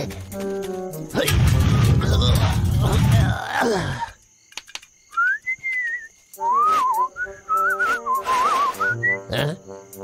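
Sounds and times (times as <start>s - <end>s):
person whistling a tune: 5.1s - 9.3s.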